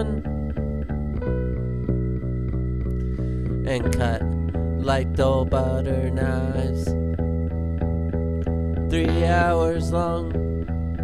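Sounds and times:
guitar and bass picking: 0.0 - 11.0.

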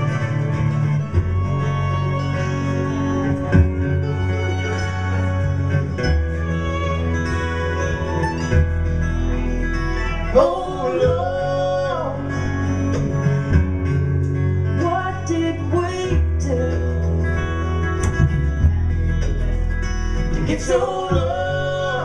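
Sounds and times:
acoustic guitars: 0.0 - 22.0
upright bass: 0.0 - 22.0
woman singing: 10.3 - 12.2, 20.4 - 22.0.

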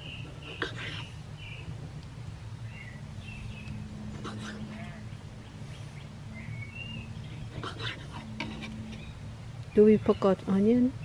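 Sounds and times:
birds chirping: 0.0 - 11.0
low background noise: 0.0 - 11.0.

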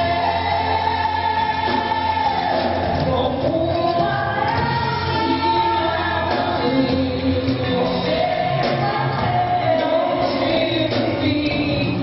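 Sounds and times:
live band playing: 0.0 - 12.0
woman singing into a microphone: 0.0 - 12.0.

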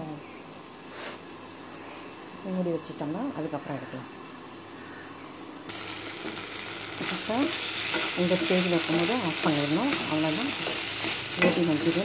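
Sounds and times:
cauliflower sizzling in a pan: 5.7 - 12.0
spatula stirring: 6.2 - 12.0.

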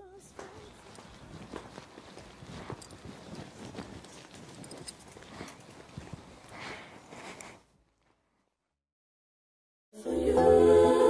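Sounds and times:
footsteps on paving: 0.3 - 7.4.

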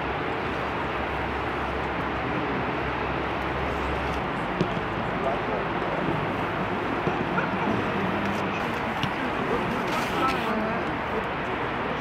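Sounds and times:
background noise wash: 0.0 - 12.0.

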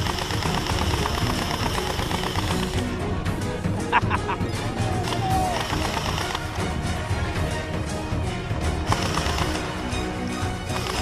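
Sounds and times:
gel blaster rapid mechanical rattle: 0.0 - 2.8, 5.6 - 6.4, 8.9 - 9.6, 10.7 - 11.0.

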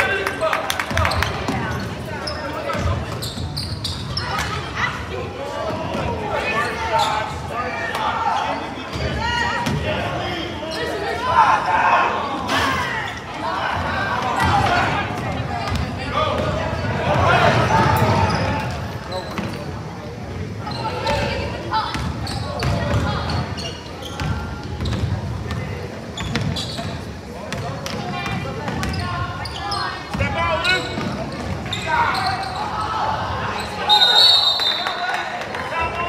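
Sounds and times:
referee whistle blast: 33.8 - 35.0.

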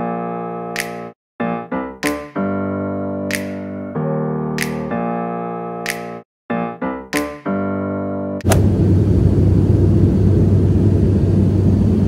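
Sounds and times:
low engine rumble: 8.5 - 12.0.

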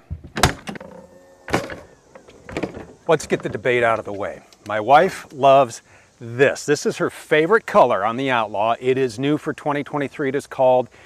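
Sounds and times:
door and steps thumping: 0.0 - 3.6.

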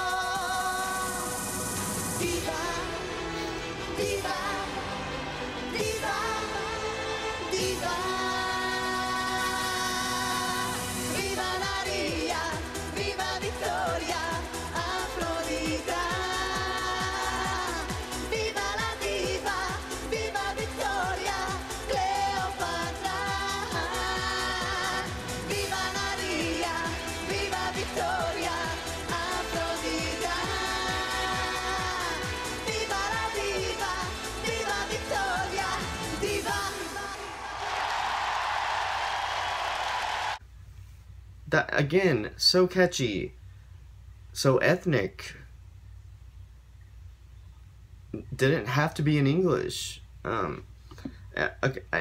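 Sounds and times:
woman singing: 0.0 - 1.5, 2.2 - 37.4
dance beat: 11.2 - 37.3
audience applauding and cheering: 29.2 - 40.4
faint low room hum: 40.4 - 52.0.

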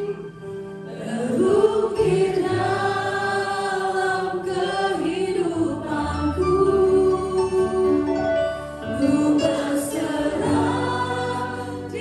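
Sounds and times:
worship band singing: 0.0 - 12.0.

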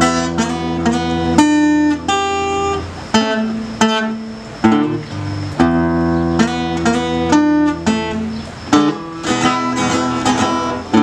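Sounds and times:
acoustic guitar blues playing: 0.0 - 11.0.

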